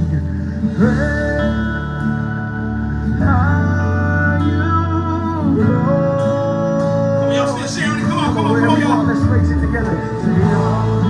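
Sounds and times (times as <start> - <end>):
guitar accompaniment: 0.0 - 11.0.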